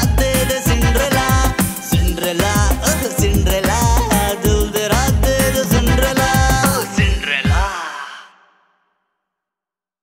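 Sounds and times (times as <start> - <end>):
pop song: 0.0 - 8.8.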